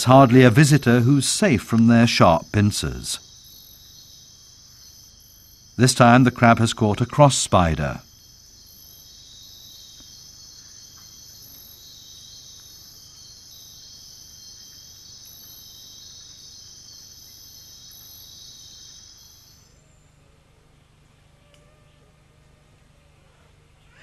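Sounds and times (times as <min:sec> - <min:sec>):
crickets trilling: 0:00.0 - 0:21.8
high pulsing insect chirp: 0:00.0 - 0:24.0.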